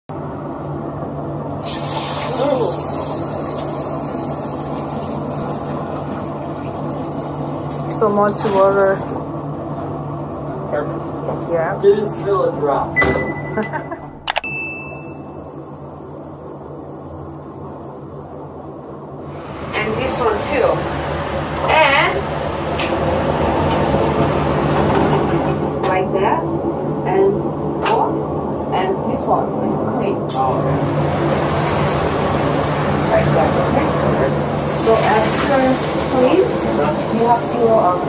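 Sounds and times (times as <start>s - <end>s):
steady low hum: 2.3s - 38.0s
electronic beep: 13.0s - 15.9s.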